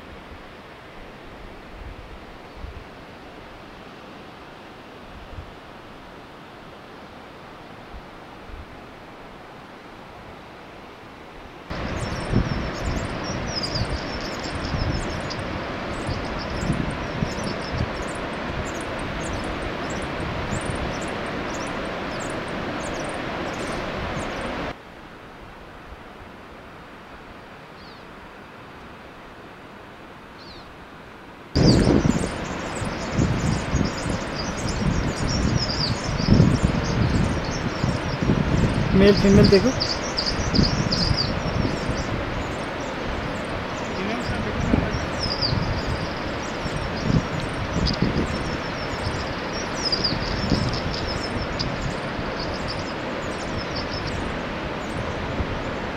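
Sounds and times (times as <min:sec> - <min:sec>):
wind rumbling on microphone: 0:00.0 - 0:10.5, 0:11.2 - 0:24.8, 0:31.5 - 0:55.9.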